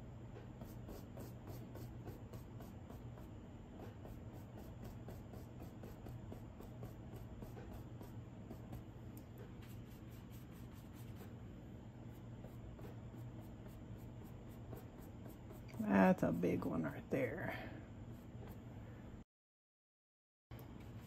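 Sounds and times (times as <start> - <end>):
paintbrush strokes on canvas: 0.5 - 11.4, 12.0 - 16.7.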